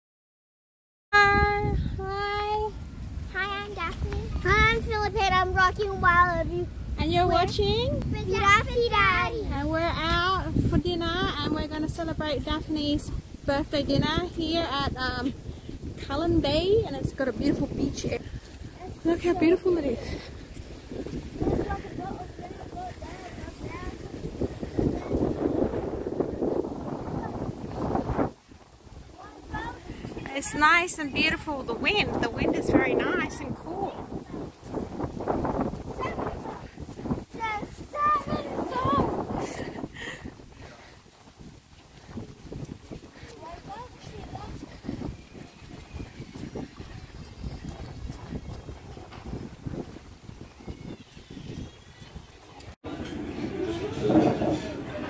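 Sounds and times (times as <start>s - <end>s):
wind buffeting microphone: 1.2s - 55.0s.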